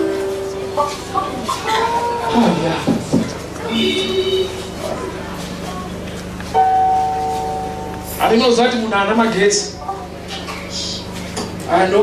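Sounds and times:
electronic keyboard chord: 0.0 - 2.3, 6.5 - 8.3.

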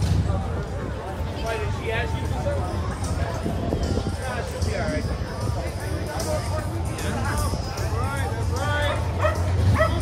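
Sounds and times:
crowd chatter: 0.0 - 10.0
dog yipping: 8.9 - 10.0.

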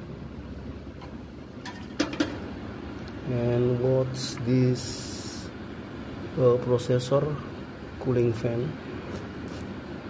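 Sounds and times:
computer fans whirring: 0.0 - 10.0.

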